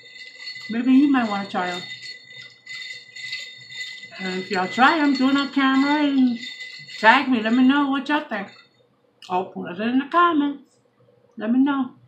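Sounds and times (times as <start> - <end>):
ice cubes clinking in glass: 0.0 - 8.7.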